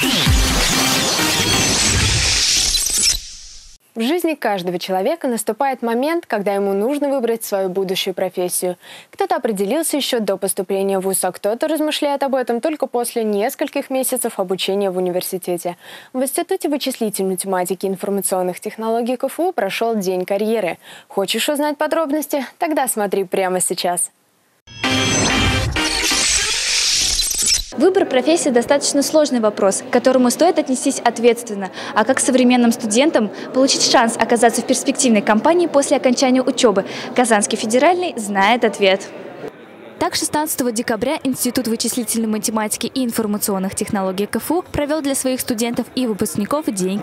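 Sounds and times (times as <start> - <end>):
glassy crash sound effect: 0.2 - 3.8, 24.7 - 27.7.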